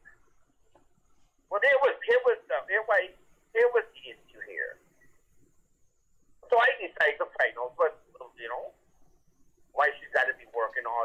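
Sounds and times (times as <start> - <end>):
person talking over phone line: 1.5 - 4.8, 6.4 - 8.8, 9.8 - 11.0.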